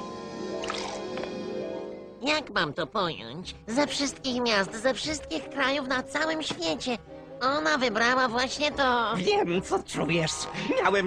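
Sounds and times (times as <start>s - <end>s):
sustained background music: 0.0s - 11.0s.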